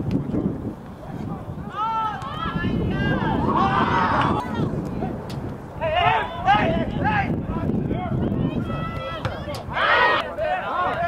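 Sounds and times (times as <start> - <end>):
voices shouting outdoors: 1.0 - 11.0
loud drawn-out yell: 1.6 - 4.7, 5.8 - 11.0.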